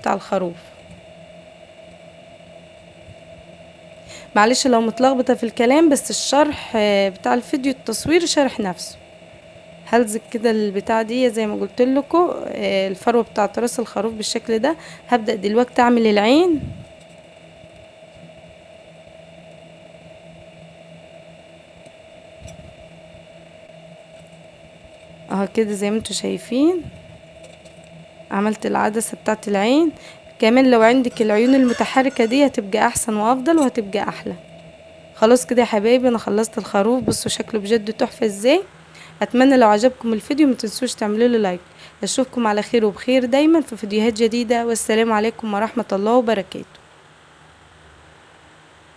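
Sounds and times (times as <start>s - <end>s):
faint hum with held tones: 0.0s - 48.9s.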